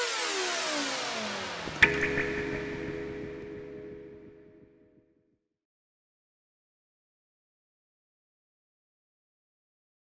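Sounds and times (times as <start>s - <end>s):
synthesizer tones sweeping downward: 0.0s - 5.1s
held low chord: 1.5s - 5.2s
sharp hit: 1.7s - 4.5s.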